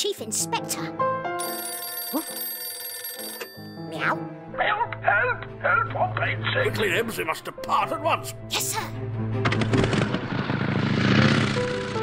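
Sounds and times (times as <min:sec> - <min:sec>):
background music: 0:00.0 - 0:12.0
old telephone bell ringing: 0:01.4 - 0:04.1.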